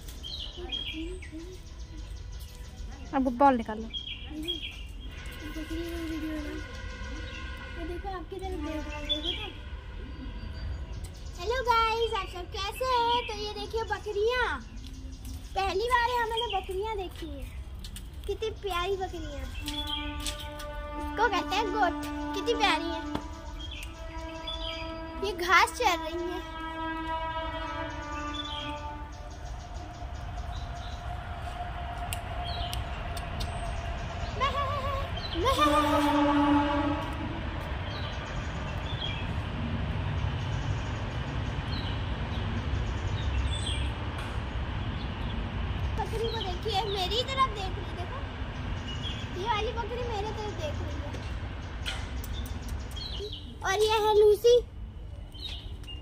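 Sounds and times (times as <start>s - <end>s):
steady distant tone: 18.2s - 54.1s
low rumble: 26.4s - 53.6s.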